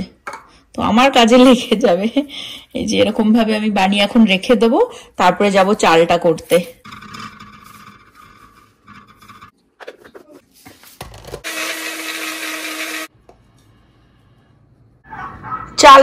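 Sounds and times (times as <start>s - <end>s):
blender grinding rice: 11.4s - 13.1s.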